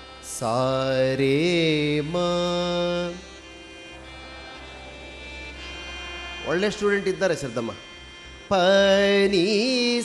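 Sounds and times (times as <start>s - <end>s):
faint steady drone: 0.0s - 10.0s
man singing a sustained note: 0.0s - 10.0s.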